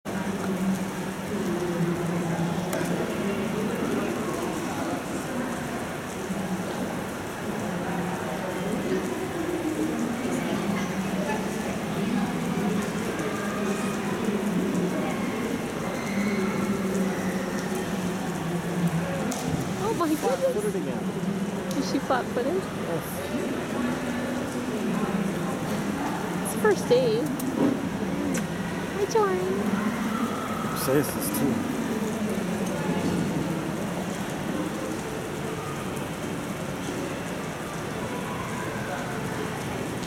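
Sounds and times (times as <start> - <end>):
faint echoing voices: 0.1 - 40.0
water hissing in pool hall: 0.1 - 40.0.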